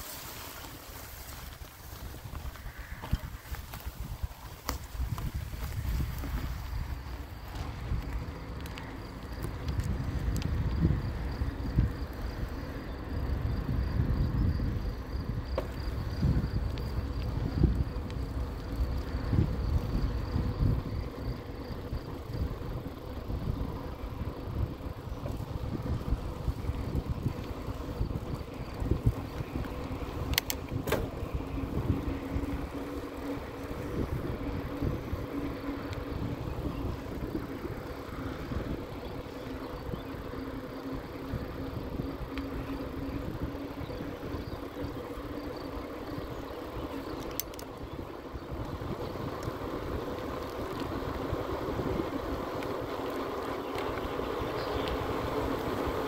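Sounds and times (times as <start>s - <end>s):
tyres rolling on asphalt: 0.0s - 56.0s
wind rumbling on microphone: 0.0s - 56.0s
electric motor hum: 4.9s - 56.0s
sharp clicks: 29.3s - 31.3s, 47.0s - 47.9s.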